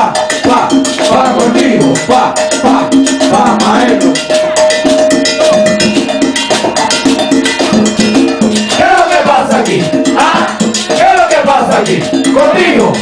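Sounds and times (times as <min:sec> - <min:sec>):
congas: 0:00.0 - 0:13.0
cowbell: 0:00.0 - 0:13.0
melodic line: 0:00.0 - 0:13.0.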